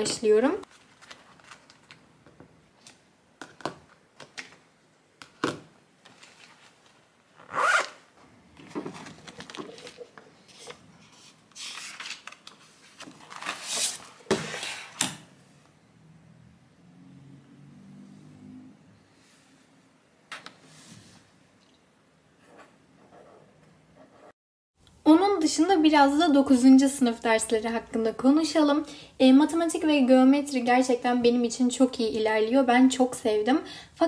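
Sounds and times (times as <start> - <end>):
notebook rustling: 0.6 - 3.0, 6.0 - 15.0
zipper being pulled: 7.4 - 8.1.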